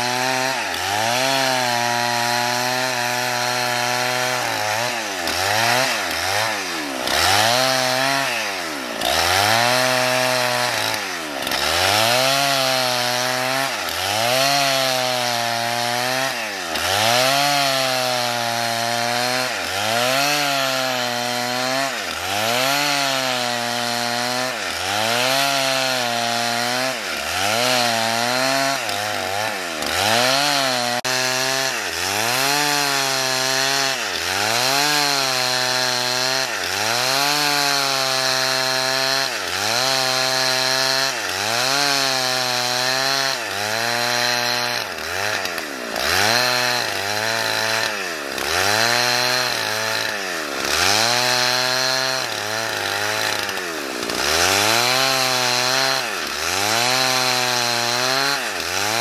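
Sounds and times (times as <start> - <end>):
chainsaw cutting log: 0.0 - 59.0.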